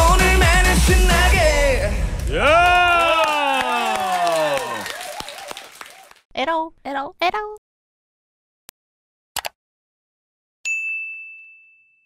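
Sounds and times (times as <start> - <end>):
bell ding: 10.7 - 12.0.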